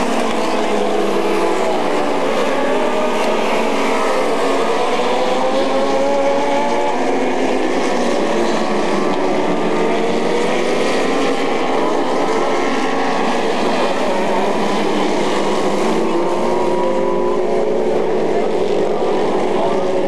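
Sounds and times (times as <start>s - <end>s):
small race car engines: 0.0s - 20.0s.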